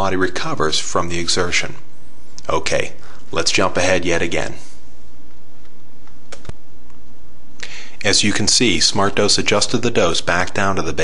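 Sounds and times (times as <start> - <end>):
sharp clicks: 5.6 - 7.0.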